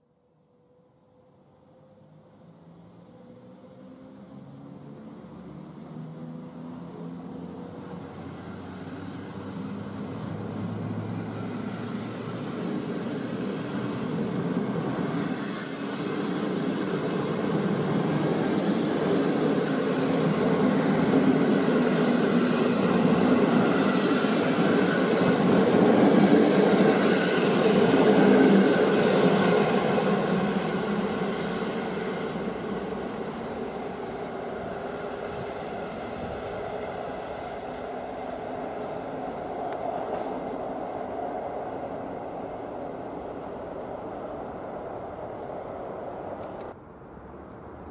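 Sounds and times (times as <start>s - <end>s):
train wheels on rails: 3.1s - 46.8s.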